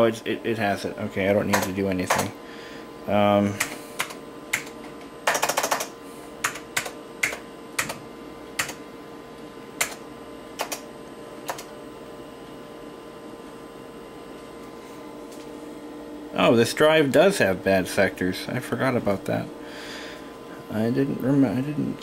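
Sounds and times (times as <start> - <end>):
faint computer hum: 0.0 - 22.0
computer keyboard key clicks: 9.8 - 10.0, 10.6 - 10.8.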